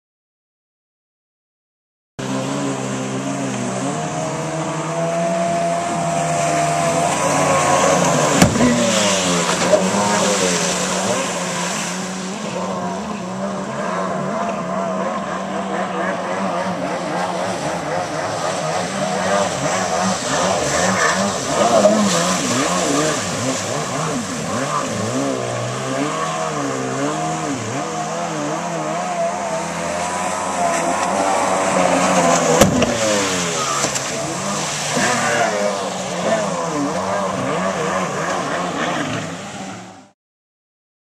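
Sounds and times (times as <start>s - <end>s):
jet ski engine revving: 2.2s - 40.2s.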